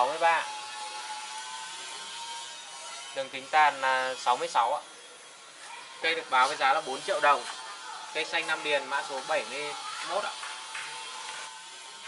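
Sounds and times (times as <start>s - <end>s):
thin high whine: 0.0s - 12.0s.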